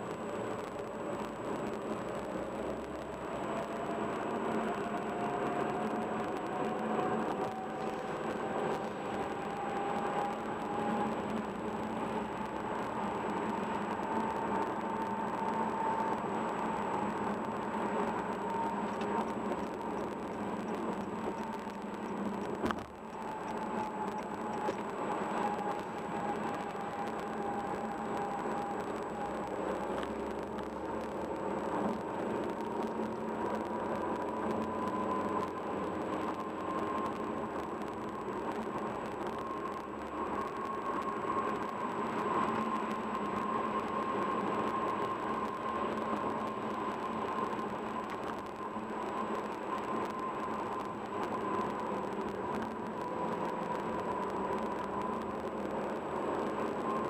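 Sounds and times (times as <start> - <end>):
road and tyre noise: 0.0 - 57.0.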